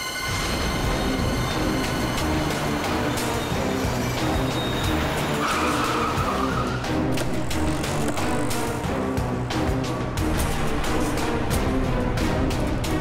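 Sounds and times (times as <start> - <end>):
dramatic music with rhythmic pulse: 0.0 - 13.0.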